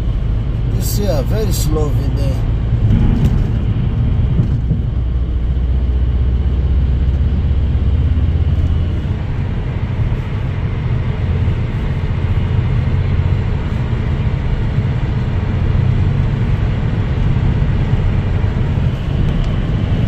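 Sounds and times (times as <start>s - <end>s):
road and engine rumble: 0.0s - 20.0s.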